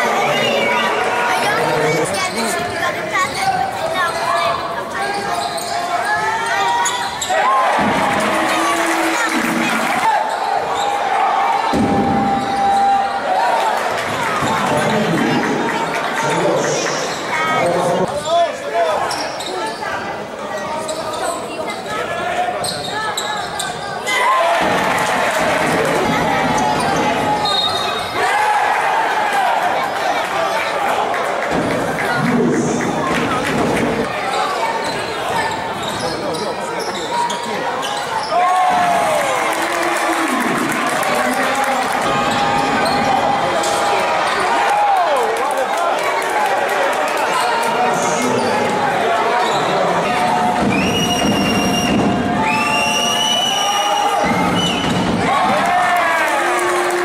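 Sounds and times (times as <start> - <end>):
voices of players and crowd: 0.0 - 57.0
sneakers squeaking: 2.2 - 7.5, 17.0 - 24.1, 26.4 - 28.2, 33.6 - 38.5, 42.3 - 44.4, 49.3 - 52.4.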